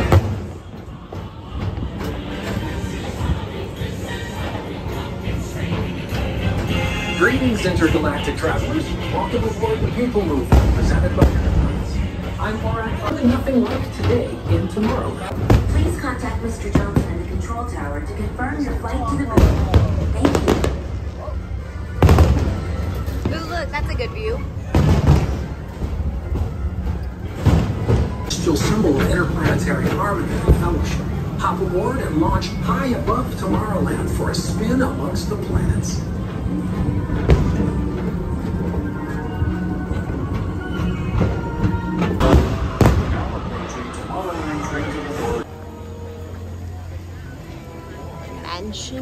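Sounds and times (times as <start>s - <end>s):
faint fireworks bangs: 0.0s - 3.4s, 8.0s - 17.6s, 19.1s - 45.8s
music playing: 0.0s - 49.0s
ride car rumbling on track: 0.0s - 49.0s
firework bang: 22.0s - 22.8s, 24.7s - 25.6s, 42.2s - 43.4s.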